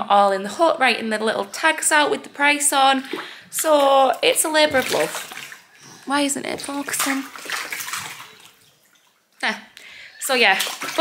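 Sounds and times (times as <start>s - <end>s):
woman speaking: 0.0s - 5.3s, 6.0s - 7.4s, 9.4s - 11.0s.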